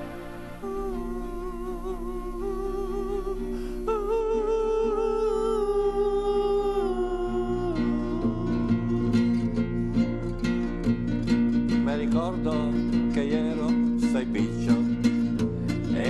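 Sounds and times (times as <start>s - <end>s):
man humming: 0.0s - 11.0s
classical guitar: 0.0s - 16.0s.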